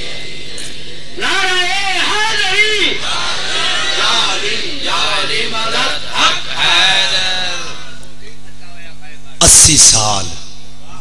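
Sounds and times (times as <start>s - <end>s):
man chanting over loudspeaker: 1.2s - 3.0s, 9.2s - 11.0s
loudspeaker low hum: 9.2s - 11.0s.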